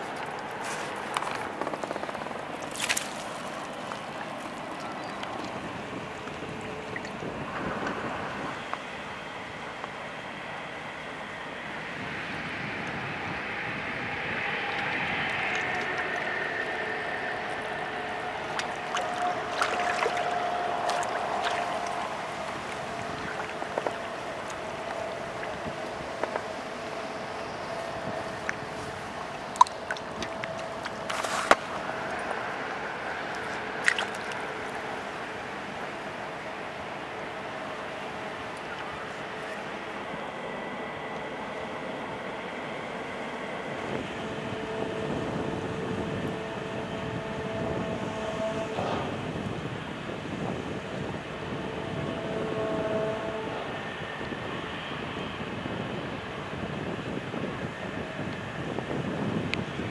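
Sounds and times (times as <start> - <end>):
boat engine droning: 0.0 - 59.9
water wash: 0.0 - 59.9
wind: 0.0 - 59.9.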